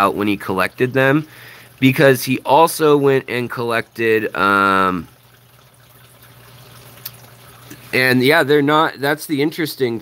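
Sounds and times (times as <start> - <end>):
aquarium water trickling: 0.0 - 10.0.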